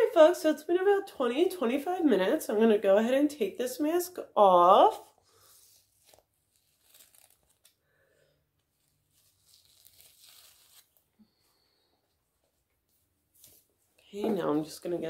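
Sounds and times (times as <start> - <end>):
mask peeling off face: 5.7 - 7.8, 8.8 - 11.1.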